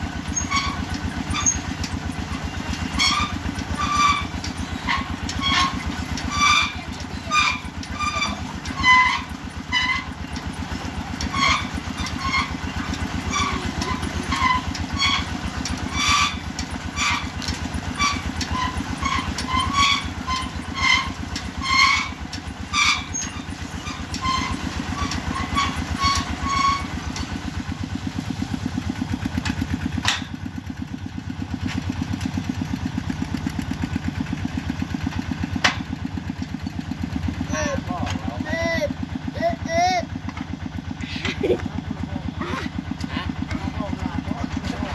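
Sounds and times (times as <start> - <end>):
drilling rig engine running: 0.0 - 44.9
high-pitched squeaks: 0.3 - 27.3.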